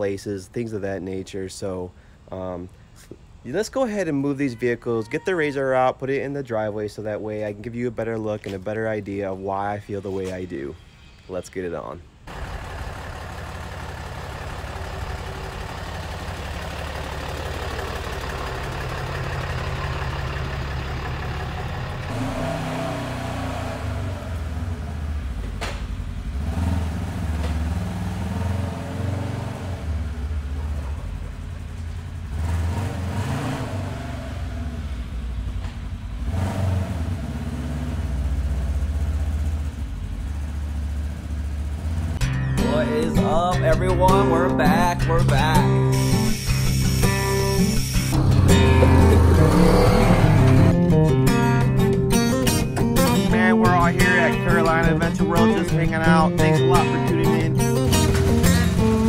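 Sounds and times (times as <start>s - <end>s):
vehicle engine revving: 12.3s - 42.3s, 43.9s - 59.0s.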